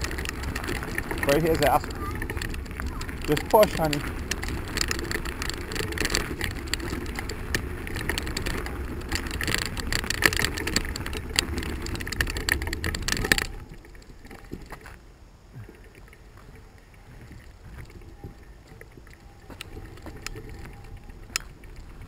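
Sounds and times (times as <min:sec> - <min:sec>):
tyres crunching on gravel: 0:00.0 - 0:15.0
bicycle rattling: 0:00.0 - 0:22.0.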